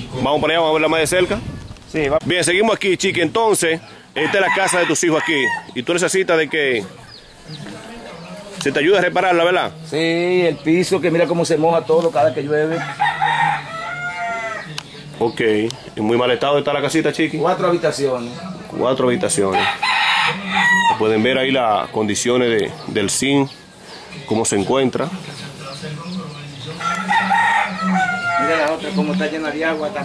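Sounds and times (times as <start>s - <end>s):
rooster crowing: 4.2s - 5.8s, 12.6s - 14.7s, 19.4s - 21.2s, 26.7s - 29.2s.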